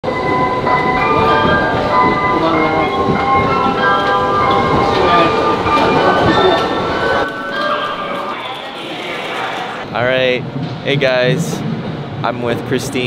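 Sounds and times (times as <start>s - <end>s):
train rumbling on rails: 0.0s - 7.7s, 9.8s - 13.0s.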